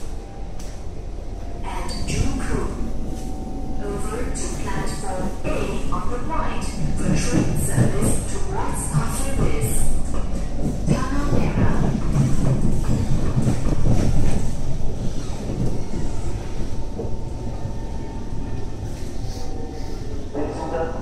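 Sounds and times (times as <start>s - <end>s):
train cabin rumble: 0.0s - 21.0s
voices: 3.8s - 10.1s, 10.7s - 12.2s.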